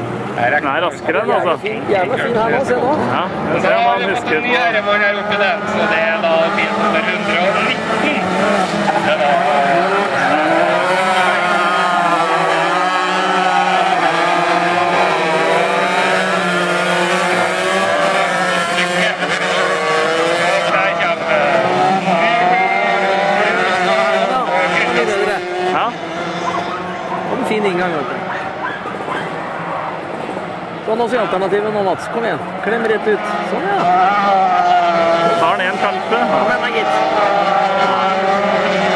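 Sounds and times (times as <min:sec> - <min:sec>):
kart engines racing: 0:00.0 - 0:38.9.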